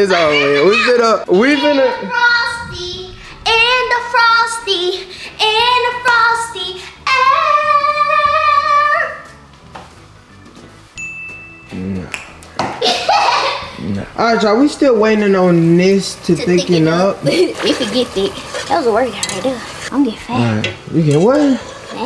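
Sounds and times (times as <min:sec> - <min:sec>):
person singing with music: 0:01.4 - 0:09.5.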